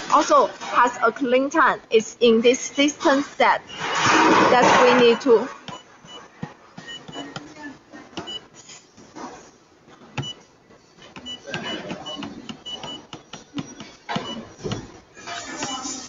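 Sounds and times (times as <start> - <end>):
touchscreen key beeps: 8.2 - 8.4, 11.2 - 14.9, 15.6 - 16.0.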